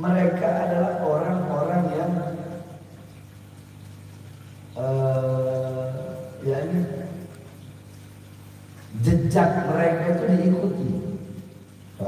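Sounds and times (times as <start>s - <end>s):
man's amplified voice: 0.0s - 2.7s, 4.8s - 7.2s, 8.9s - 11.2s.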